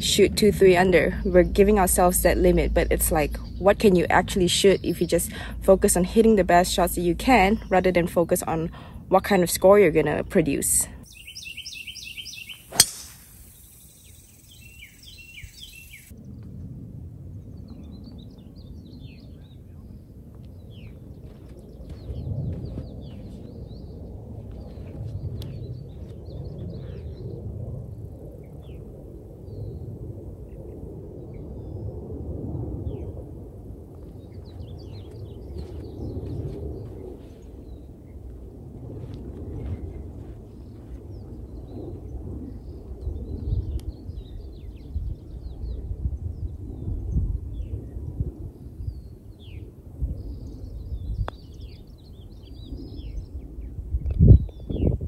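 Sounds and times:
wind on microphone: 0.0s - 55.0s
small birds chirping: 0.7s - 8.6s, 10.6s - 16.2s, 34.0s - 38.3s.

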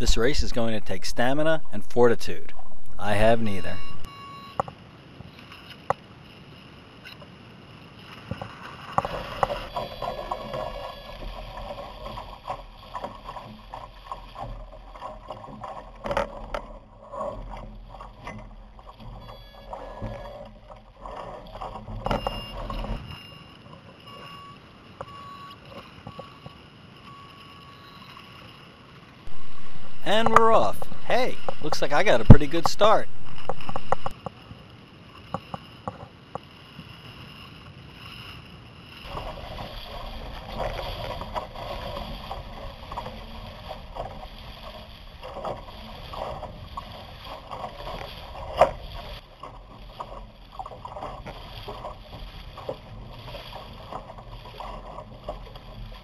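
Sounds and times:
wind buffeting camera: 0.0s - 24.2s, 29.2s - 37.1s, 37.9s - 56.0s
water splashing: 0.0s - 56.0s
short high beeps: 2.7s - 4.6s, 22.1s - 28.3s.

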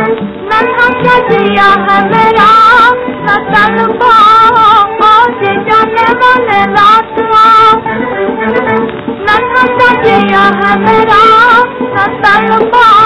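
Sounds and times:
instrumental accompaniment: 0.0s - 13.0s
woman singing film song: 0.0s - 13.0s.

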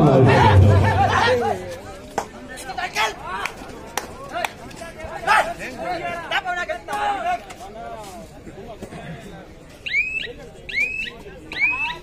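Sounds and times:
crowd chatter: 0.0s - 12.0s
men calling and shouting: 0.0s - 12.0s.

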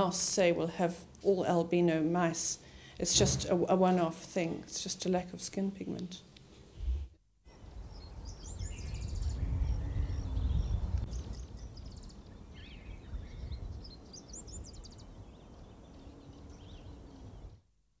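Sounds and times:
bird chirps: 7.5s - 17.5s.

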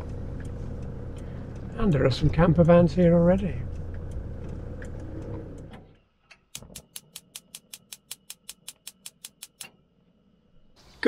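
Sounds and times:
van engine and road noise: 0.0s - 6.0s
sharp fast ticks: 6.6s - 9.8s.

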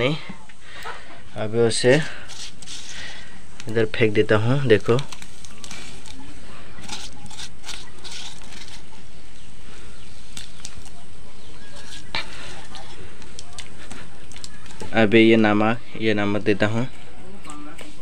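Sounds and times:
wood fire hissing and crackling: 0.0s - 16.9s.

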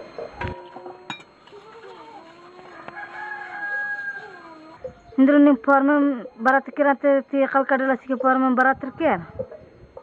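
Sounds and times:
rooster crowing: 2.0s - 5.2s.

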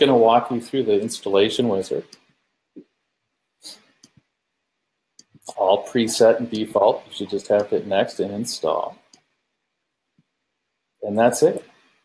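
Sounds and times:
short breathy hiss: 3.6s - 4.0s.

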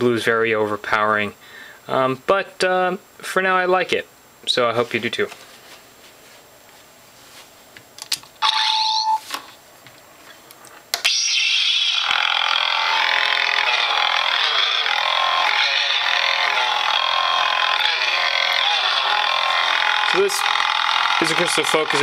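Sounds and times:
lightsaber ignition: 10.9s - 22.0s
lightsaber hum: 11.0s - 22.0s.

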